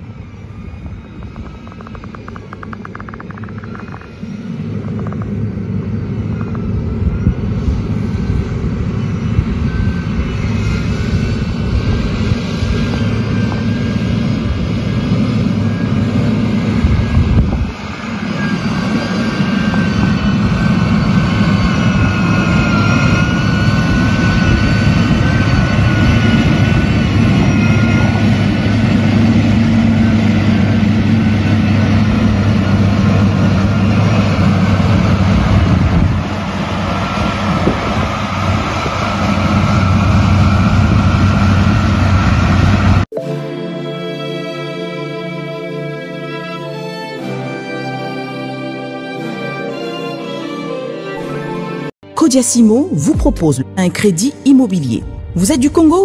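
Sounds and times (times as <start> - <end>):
wavering whine: 0.0 - 49.5
diesel engine drone: 0.0 - 51.9.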